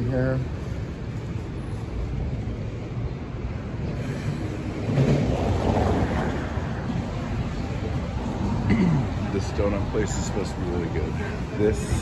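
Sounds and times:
passing traffic: 0.0s - 12.0s.

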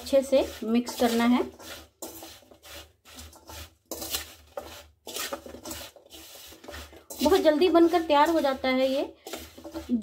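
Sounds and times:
vegetables stirred in steel bowl: 0.0s - 10.0s.

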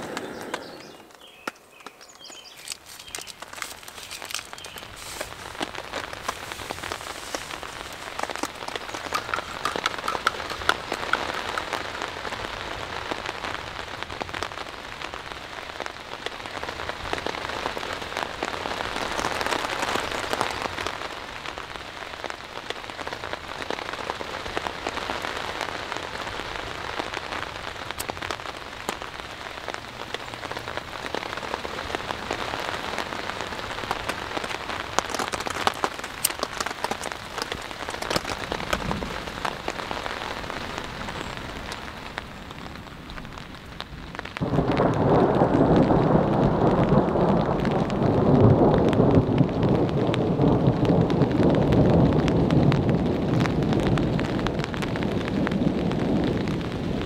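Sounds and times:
rain falling on a tarp: 0.0s - 57.0s.

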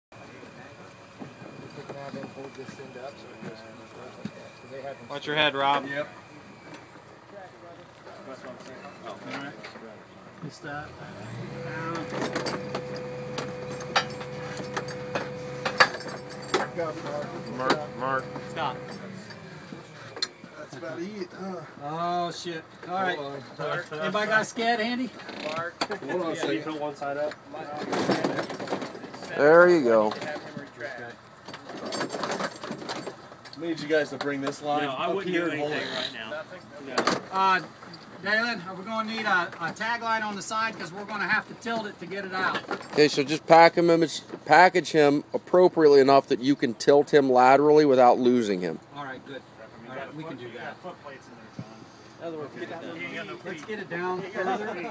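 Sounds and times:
people talking in background: 0.1s - 32.2s, 33.2s - 54.9s
man talking: 16.6s - 19.2s, 38.5s - 54.9s.

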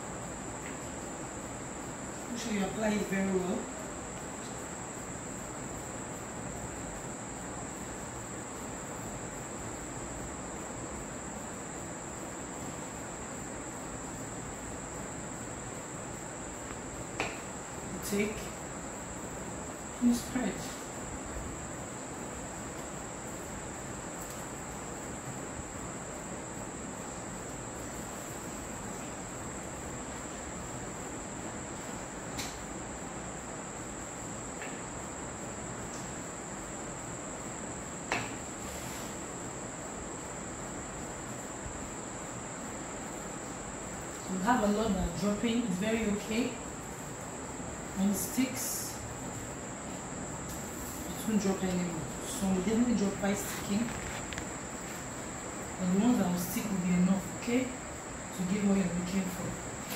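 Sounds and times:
low hiss: 0.0s - 59.9s.

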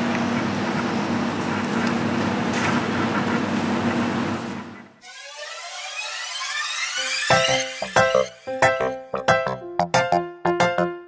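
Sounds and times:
steady mechanical hum: 0.0s - 5.0s
music with rising sweeping tones: 5.0s - 11.0s.

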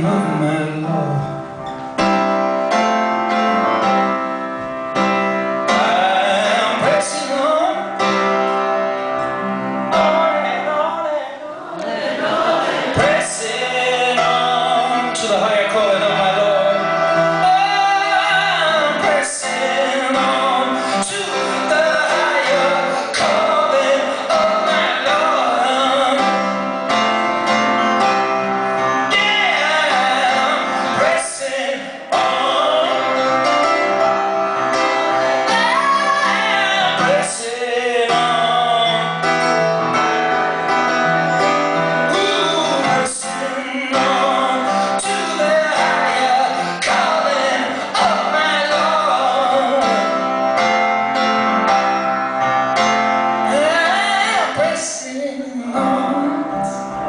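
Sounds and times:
man singing: 0.0s - 1.6s, 5.6s - 8.5s, 9.9s - 11.8s, 12.9s - 27.0s, 28.8s - 34.0s, 34.9s - 40.0s, 41.9s - 50.8s, 53.4s - 57.0s
instrumental accompaniment: 0.0s - 57.0s
piano chords: 0.0s - 57.0s.

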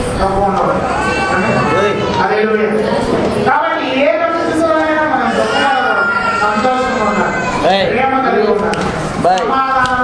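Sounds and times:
man preaching into microphone: 0.0s - 10.0s.

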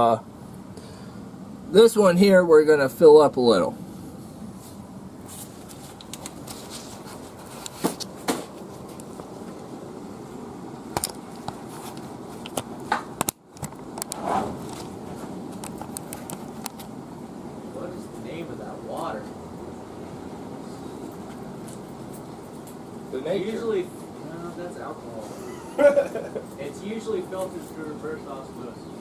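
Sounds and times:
steady background hum: 0.0s - 29.0s.

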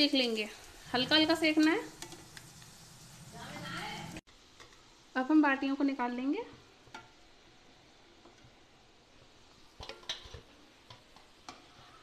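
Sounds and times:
hot oil sizzling: 0.0s - 12.0s.

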